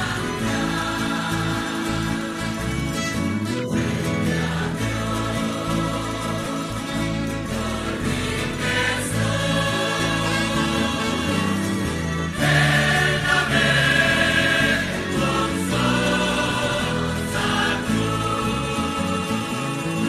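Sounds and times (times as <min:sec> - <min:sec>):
choir singing a hymn: 0:00.0 - 0:20.0
low accompaniment: 0:00.0 - 0:20.0.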